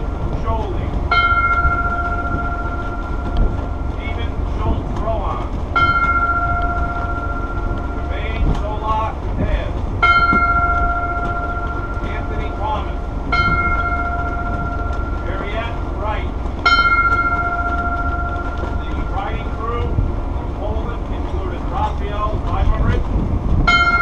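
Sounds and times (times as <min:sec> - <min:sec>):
ship's bell ringing: 0:00.0 - 0:24.0.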